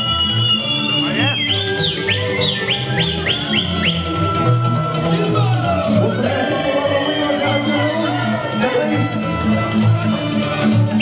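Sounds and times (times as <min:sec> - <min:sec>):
high whistling melody: 0:00.0 - 0:05.0, 0:06.2 - 0:08.7
low folk accompaniment: 0:00.0 - 0:11.0.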